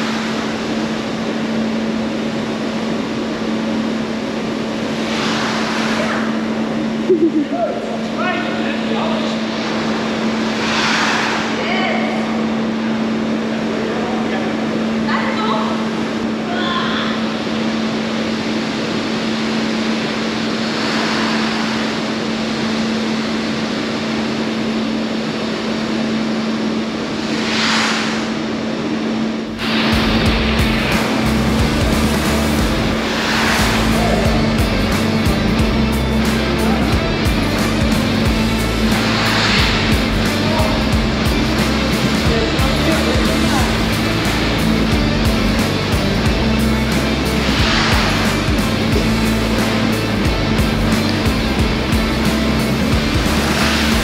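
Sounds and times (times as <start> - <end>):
motor hum: 0.0 - 54.0
upbeat background music: 29.6 - 54.0.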